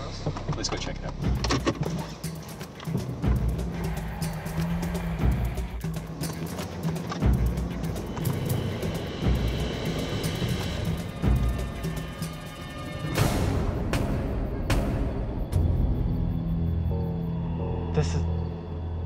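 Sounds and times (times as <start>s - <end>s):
background music with pulsing bass: 0.0s - 19.0s.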